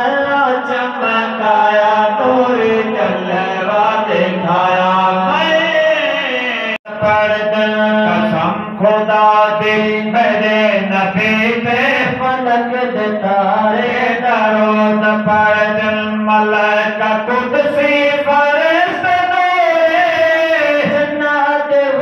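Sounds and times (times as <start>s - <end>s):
man singing long gliding notes: 0.0s - 22.0s.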